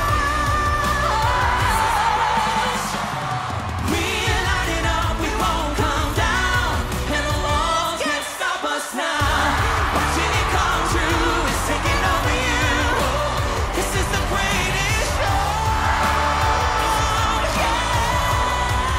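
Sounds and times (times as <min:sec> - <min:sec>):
live pop song with singing: 0:00.0 - 0:18.9.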